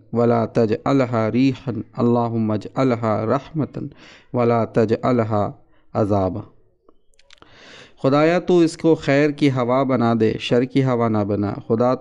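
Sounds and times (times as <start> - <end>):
man narrating: 0.0 - 6.5, 8.0 - 12.0
soft in-breath: 3.9 - 4.4, 7.4 - 8.0
mouth clicks: 6.8 - 7.6.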